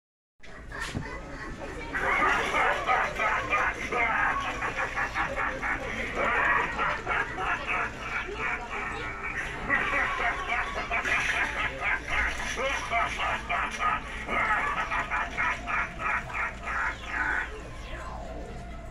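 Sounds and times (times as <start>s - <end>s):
distorted animatronic character voice: 0.4s - 18.9s.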